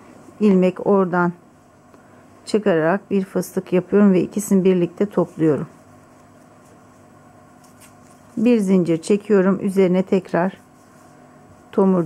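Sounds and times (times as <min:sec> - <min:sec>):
steady low hum: 0:00.0 - 0:12.0
yarn rustling with crochet hook: 0:04.8 - 0:09.2.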